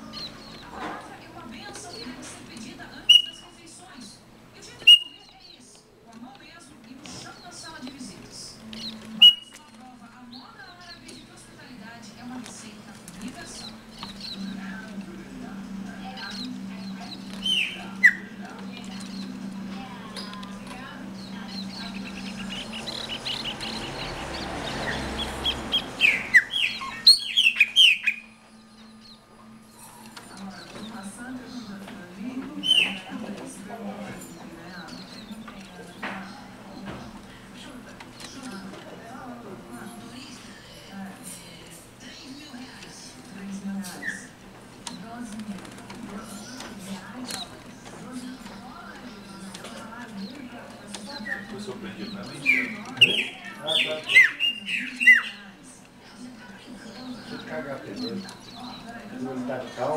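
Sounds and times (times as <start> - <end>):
blackbird singing: 0.0 - 0.9, 2.8 - 3.6, 4.7 - 5.7, 8.5 - 11.3, 13.4 - 15.0, 15.6 - 31.8, 32.6 - 33.2, 48.3 - 55.6
faint bird chirps: 2.9 - 3.6, 4.8 - 5.6, 8.7 - 9.6, 16.0 - 18.4.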